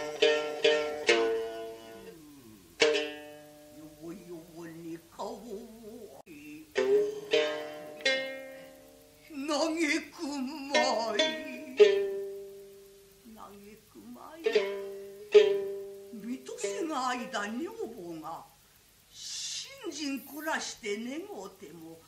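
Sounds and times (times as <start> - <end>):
plucked shamisen notes: 0.0 - 5.7, 6.6 - 13.2, 13.8 - 18.1
woman chanting with vibrato: 3.8 - 7.8, 9.3 - 12.0.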